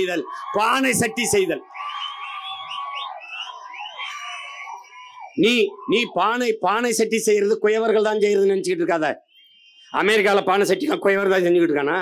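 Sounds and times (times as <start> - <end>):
man's amplified voice: 0.0 - 1.6, 5.4 - 9.2, 9.9 - 12.0
crowd cheering: 0.0 - 8.0
shrill whistles: 0.3 - 5.8.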